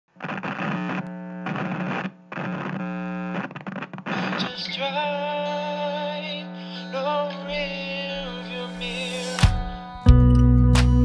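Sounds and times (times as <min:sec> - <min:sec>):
static-like electronic noise: 0:07.4 - 0:10.0.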